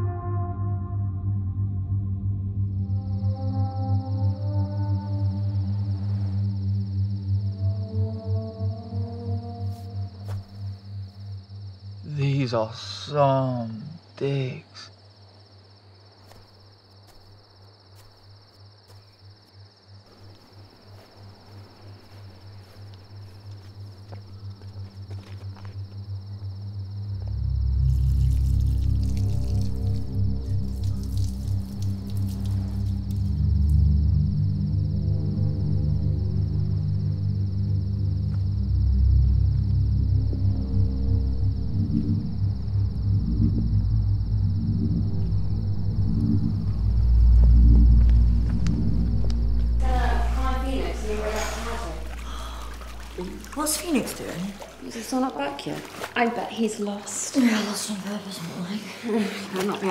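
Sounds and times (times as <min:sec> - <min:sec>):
low pulsing drone score: 0:00.0 - 0:13.3, 0:21.5 - 0:56.2.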